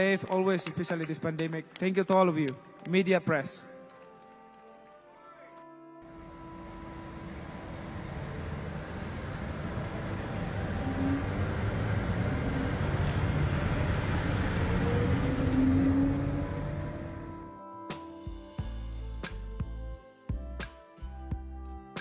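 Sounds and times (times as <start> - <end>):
vehicle road and engine rumble: 6.1 - 17.5.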